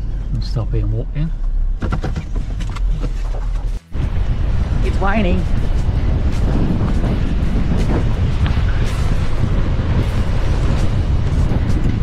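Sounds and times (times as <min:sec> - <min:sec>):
vehicle engine and tyres rumbling: 0:00.0 - 0:12.0.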